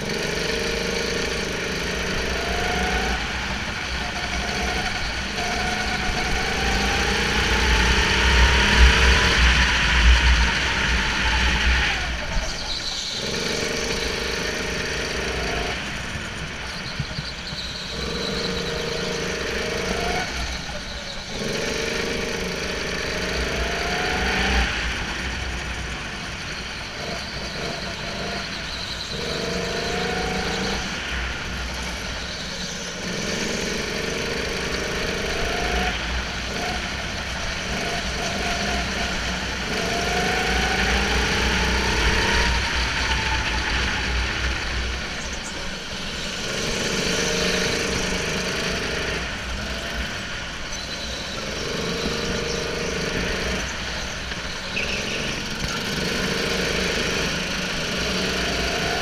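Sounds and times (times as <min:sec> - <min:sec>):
go-kart engine revving: 0:00.0 - 0:59.0.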